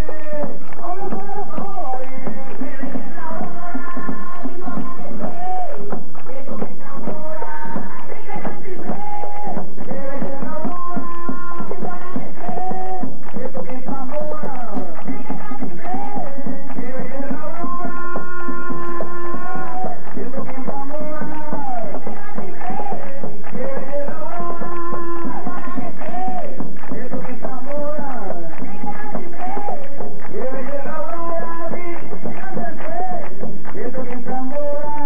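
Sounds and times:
double-headed drum beating: 0.0 - 35.0
person singing: 0.0 - 35.0.

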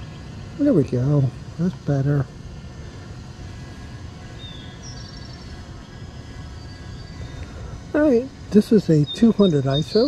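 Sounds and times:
outdoor background noise: 0.0 - 10.0
bird chirps: 4.1 - 10.0.

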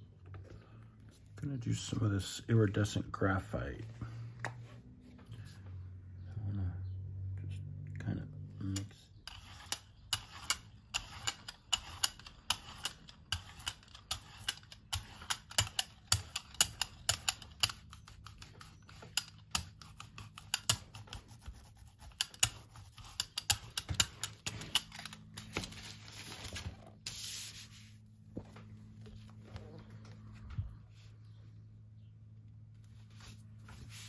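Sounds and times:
brayer rolling sticky paint: 9.2 - 30.1
paper rustling: 24.4 - 28.0.

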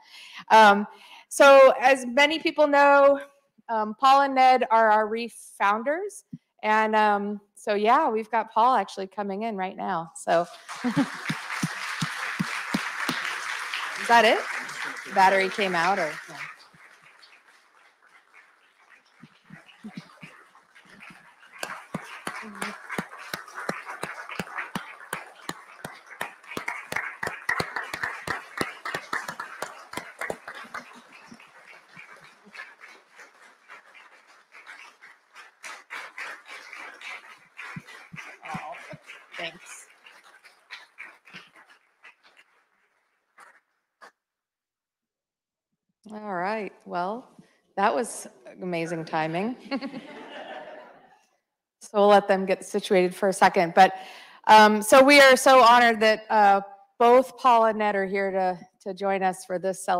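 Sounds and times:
audience clapping: 10.4 - 42.6.

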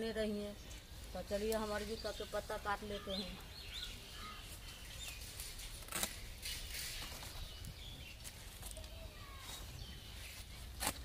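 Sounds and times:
birds chirping: 0.0 - 11.0
leaves and stalks rustling: 0.0 - 11.0
stalk snapping: 5.1 - 7.4, 10.6 - 11.0.

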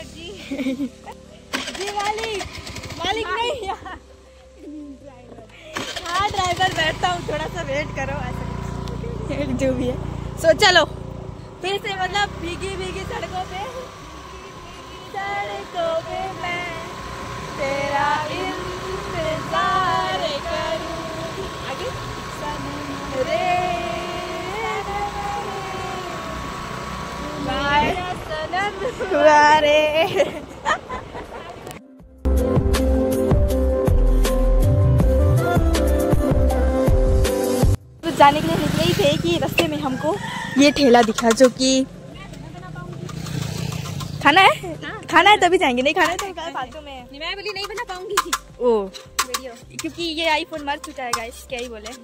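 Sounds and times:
scooter engine: 0.0 - 4.0, 5.6 - 31.6, 38.0 - 52.0
women singing held notes: 14.8 - 21.6, 22.4 - 26.4.

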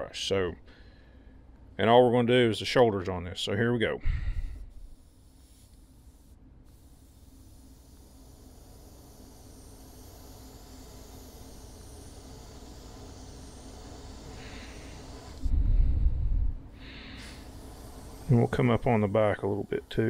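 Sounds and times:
airbrush spraying hiss: 4.2 - 20.0
muffled low rush: 15.4 - 16.8.

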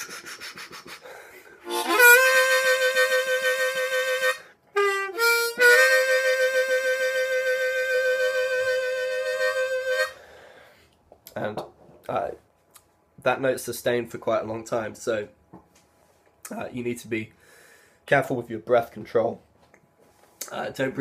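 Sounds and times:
harmonica with vibrato: 0.0 - 10.6.

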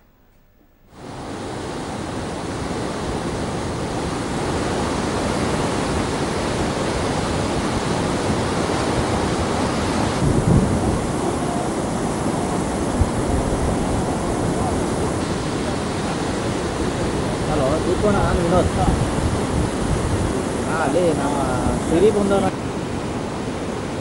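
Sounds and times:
rushing floodwater: 0.9 - 24.0.

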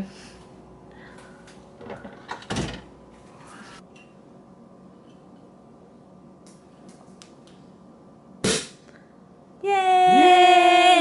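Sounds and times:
person cheering woo: 9.6 - 11.0.

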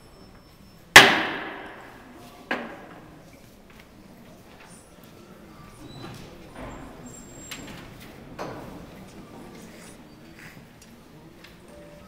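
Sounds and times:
sharp loud knock: 1.0 - 1.9.

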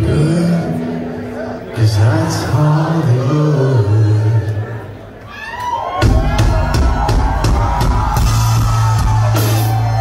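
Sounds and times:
live rock band playing: 5.9 - 10.0
steady drum hits: 6.0 - 10.0.

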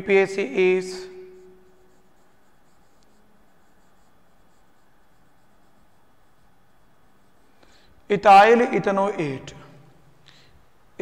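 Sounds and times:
marker writing on whiteboard: 0.2 - 7.9.

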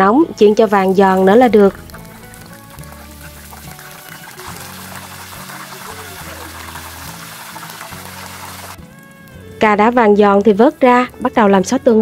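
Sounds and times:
food sizzling in hot oil: 0.0 - 12.0
soft background music: 0.0 - 12.0.

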